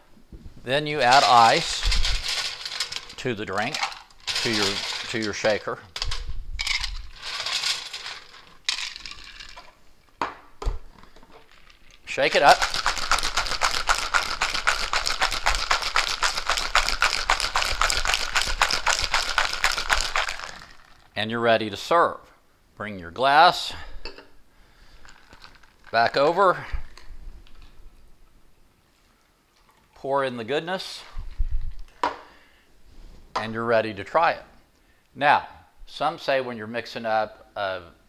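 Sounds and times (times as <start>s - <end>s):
ice rattling in cocktail shaker: 1.0s - 9.8s, 11.5s - 21.1s, 25.0s - 26.2s.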